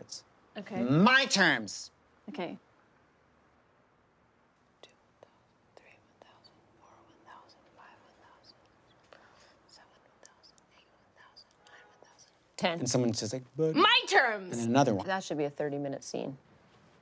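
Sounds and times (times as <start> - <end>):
faint whispering: 4.8 - 12.6.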